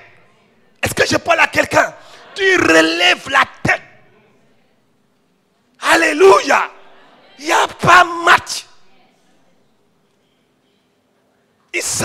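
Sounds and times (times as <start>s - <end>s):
man speaking into a microphone: 0.8s - 4.2s, 5.8s - 6.8s, 7.4s - 8.8s, 11.7s - 12.0s.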